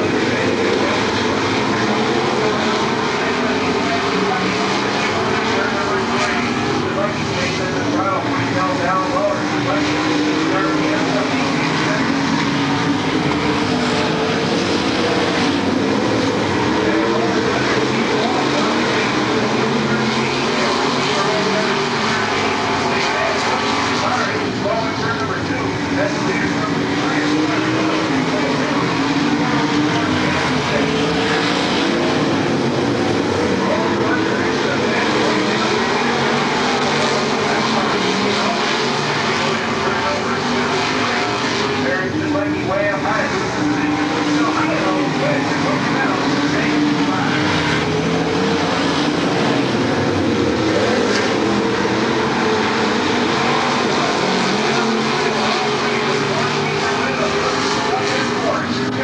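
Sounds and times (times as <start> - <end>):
race car engines droning: 0.0 - 59.0.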